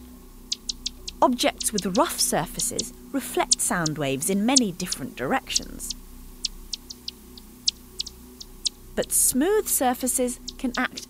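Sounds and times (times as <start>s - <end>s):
bat echolocation chirps: 0.0s - 11.0s.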